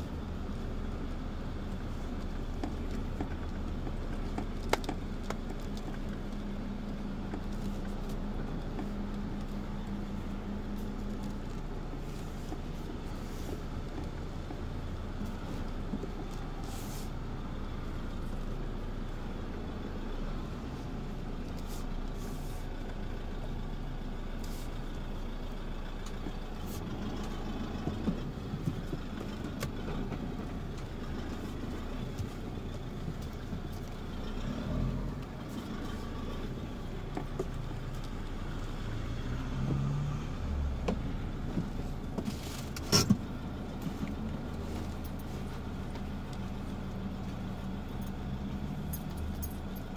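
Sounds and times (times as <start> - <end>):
car engine and road rumble: 0.0 - 49.9.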